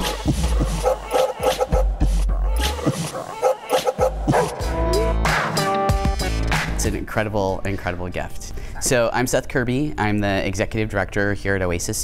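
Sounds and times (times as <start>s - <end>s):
background music: 0.0s - 9.2s
small dog barking: 0.8s - 1.9s, 3.1s - 4.6s.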